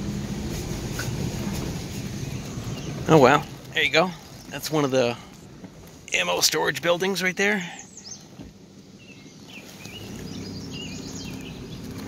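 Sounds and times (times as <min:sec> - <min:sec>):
car engine running: 0:00.0 - 0:12.0
birds chirping: 0:00.8 - 0:12.0.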